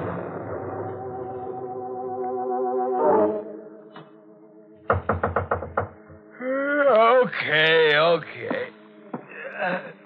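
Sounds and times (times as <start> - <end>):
faint held music chord: 0.6 - 4.9
knocking on door: 4.9 - 6.2.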